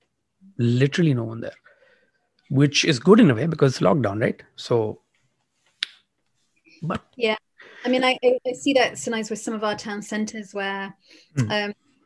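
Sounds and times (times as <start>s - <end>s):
person speaking: 0.5s - 1.6s, 2.5s - 5.0s, 6.8s - 10.3s, 11.4s - 11.7s.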